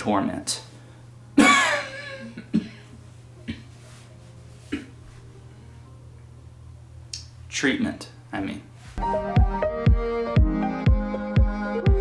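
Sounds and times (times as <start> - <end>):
man coughing: 1.4 - 3.7, 4.7 - 5.0.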